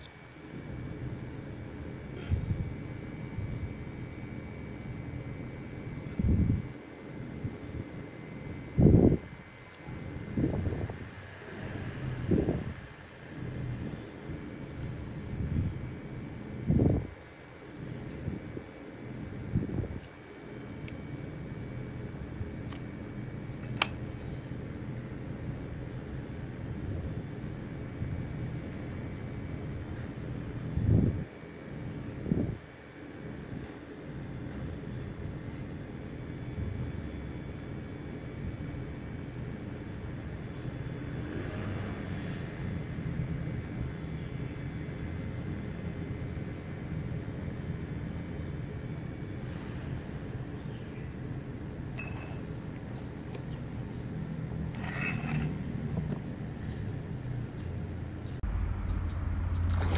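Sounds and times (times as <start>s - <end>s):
low background rumble: 51.4s - 59.9s.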